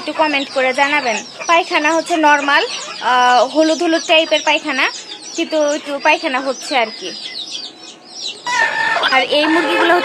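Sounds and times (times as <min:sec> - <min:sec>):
chickens chirping: 0:00.0 - 0:10.0
hen calling: 0:00.0 - 0:10.0.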